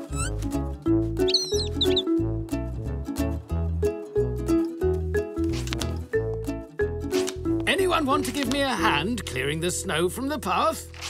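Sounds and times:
cheerful cartoon music: 0.0s - 11.0s
cartoon bird chirping: 1.3s - 2.1s.

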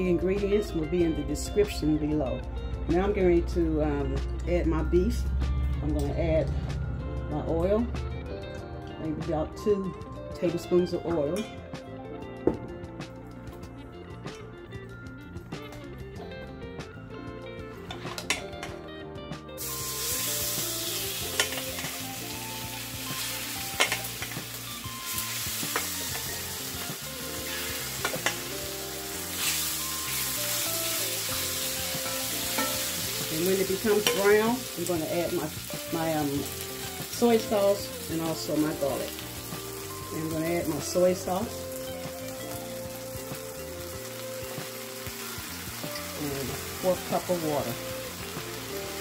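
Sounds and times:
meat sizzling in hot oil: 19.6s - 49.0s
metal tongs clicking on pan: 21.3s - 21.9s, 23.7s - 24.4s, 28.0s - 28.5s, 32.0s - 32.9s, 33.9s - 34.5s.

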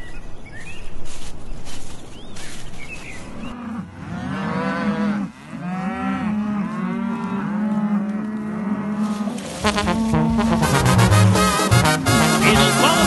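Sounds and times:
cattle mooing: 3.5s - 13.0s.

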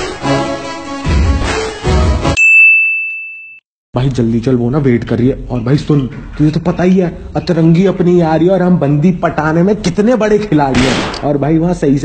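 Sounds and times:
background music: 0.0s - 2.4s
high bell-like ding: 2.4s - 3.6s.

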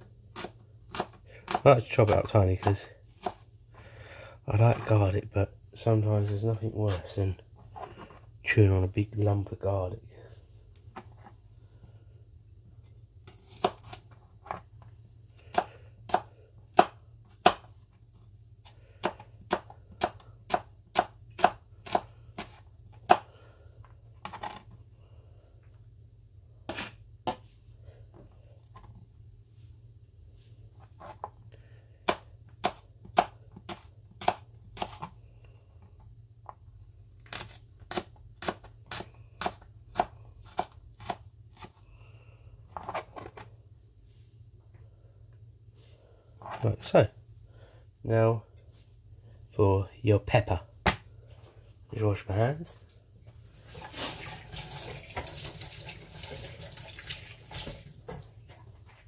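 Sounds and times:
knife chopping on plastic board: 0.0s - 3.5s, 13.3s - 14.6s, 15.4s - 17.8s, 18.6s - 23.4s, 26.7s - 27.5s, 32.0s - 35.1s, 37.2s - 41.8s, 50.8s - 51.1s.

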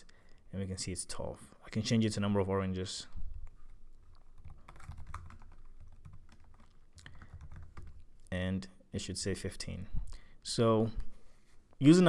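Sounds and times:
keyboard typing: 3.7s - 8.1s.

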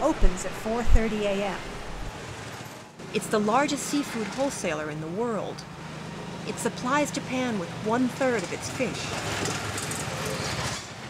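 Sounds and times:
cart engine rumble: 6.5s - 11.0s
busy market floor noise: 8.4s - 11.0s.

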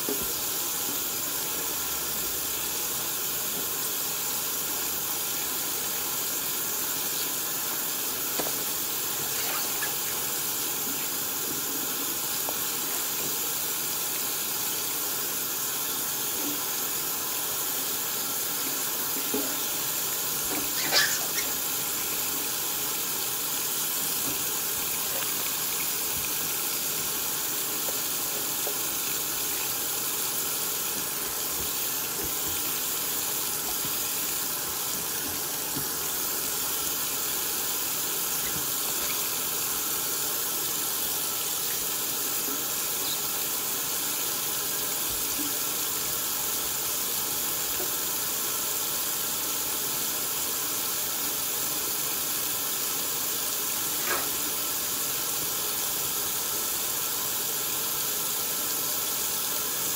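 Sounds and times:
faucet running into steel sink: 0.0s - 58.6s.

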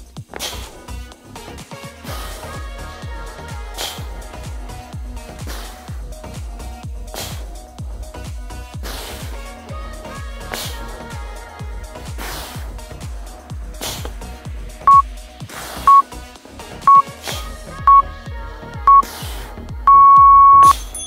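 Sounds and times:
background music with steady beat: 0.0s - 21.0s
timer beeps: 16.9s - 17.1s, 17.9s - 18.1s, 18.9s - 19.1s, 19.9s - 20.8s.

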